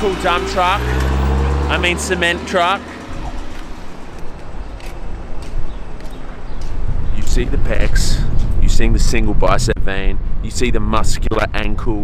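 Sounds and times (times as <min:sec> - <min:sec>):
city street traffic: 0:00.0 - 0:12.0.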